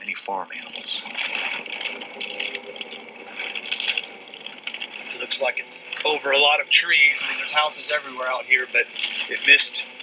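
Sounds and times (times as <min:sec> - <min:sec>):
rain on car windshield: 0:00.0 - 0:10.0.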